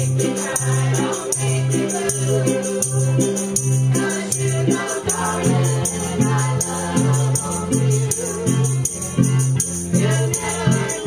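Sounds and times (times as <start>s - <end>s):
bass line: 0.0s - 11.0s
fiddles and guitars: 0.0s - 11.0s
group singing: 0.0s - 11.0s
shaken percussion beat: 0.0s - 11.0s.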